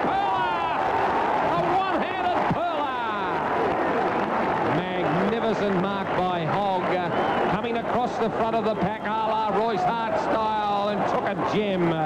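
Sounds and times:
crowd noise: 0.0 - 12.0
man commentating excitedly: 1.5 - 3.5, 4.7 - 12.0.

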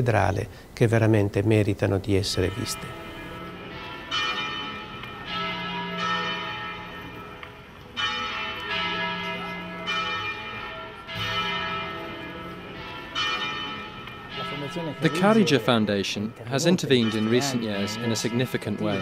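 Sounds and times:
church bells ringing: 2.3 - 19.0.

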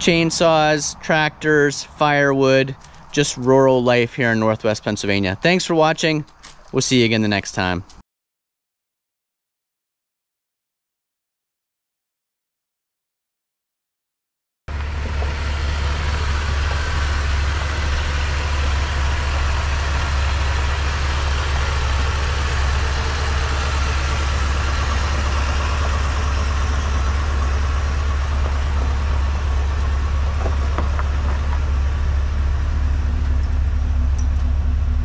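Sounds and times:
truck engine idling: 14.7 - 35.0.

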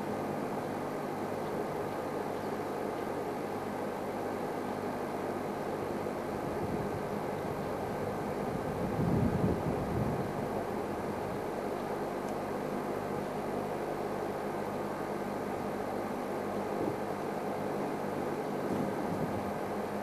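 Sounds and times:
low engine hum: 0.0 - 20.0.

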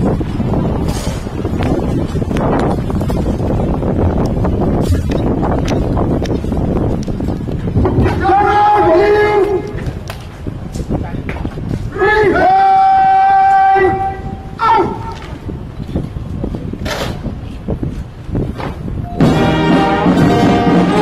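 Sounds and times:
wind rumbling on microphone: 0.0 - 21.0
shouted parade command: 8.0 - 9.8, 11.9 - 15.4.

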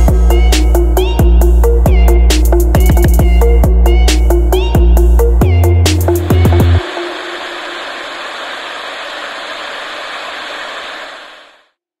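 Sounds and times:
static hiss: 6.0 - 11.7.

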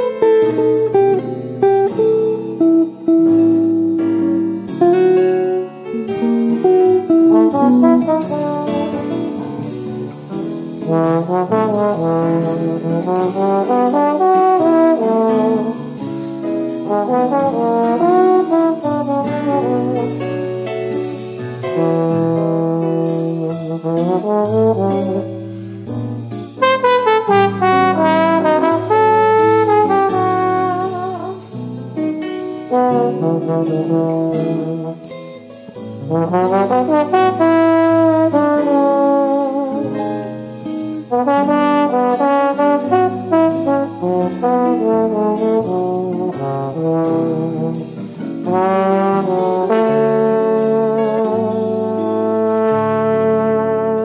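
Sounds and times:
upbeat instrumental jazz: 0.0 - 54.0.

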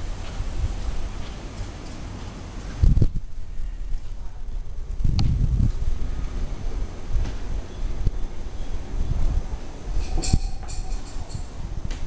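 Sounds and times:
wind noise on microphone: 0.0 - 12.0
handling noise on microphone: 7.1 - 12.0.

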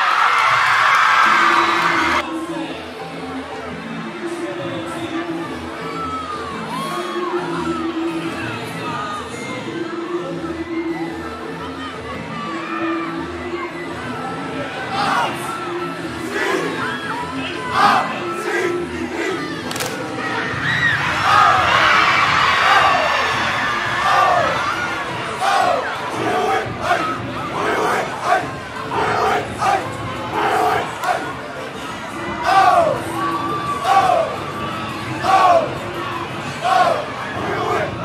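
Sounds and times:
crowd cheering and shouting: 0.0 - 2.8, 4.3 - 38.0.

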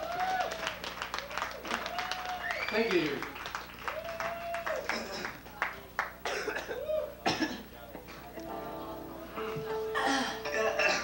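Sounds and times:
electric guitar notes: 8.4 - 11.0.

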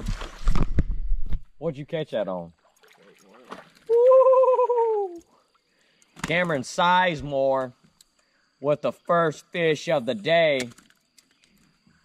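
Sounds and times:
fish splashing: 2.6 - 4.2
high-pitched excited cry: 3.9 - 5.2.

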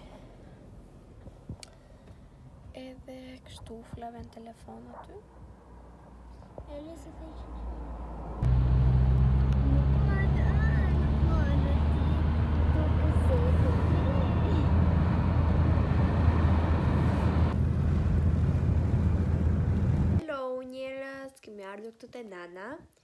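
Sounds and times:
car engine and road drone: 5.2 - 20.2.

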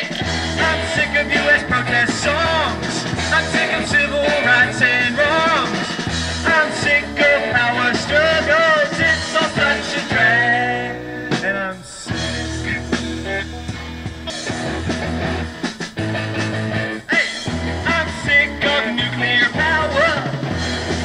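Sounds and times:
electric guitar lead line: 0.0 - 21.0
rock band music: 0.0 - 21.0.

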